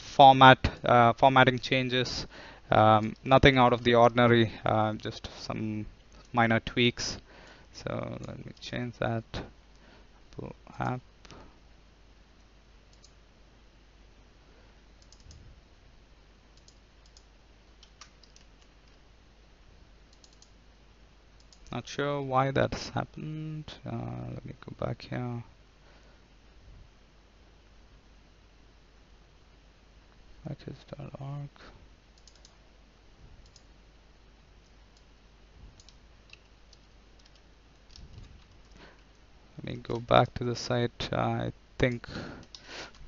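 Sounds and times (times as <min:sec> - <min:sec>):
low room hum: 0:00.0 - 0:43.0
computer mouse clicks: 0:12.9 - 0:13.2, 0:15.0 - 0:15.4, 0:16.6 - 0:19.0, 0:20.1 - 0:20.6, 0:21.4 - 0:21.8, 0:32.2 - 0:32.6, 0:33.4 - 0:33.7, 0:35.7 - 0:39.2, 0:41.9 - 0:43.0.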